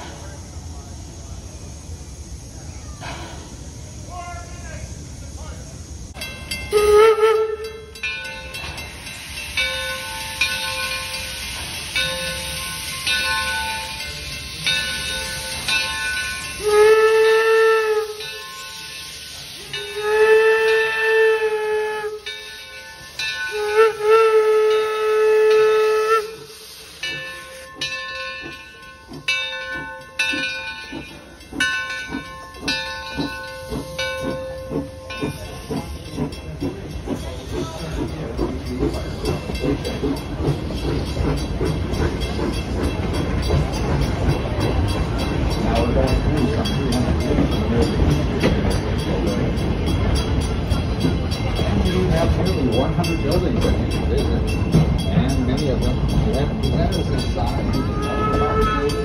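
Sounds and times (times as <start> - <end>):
steam exhaust chuffs: 0.0 - 59.0
train coaches rumbling past: 0.0 - 59.0
locomotive bell ringing: 6.1 - 59.0
wheels clicking on rail: 6.1 - 59.0
steam locomotive whistle: 6.7 - 8.1, 16.4 - 27.9, 57.7 - 59.0.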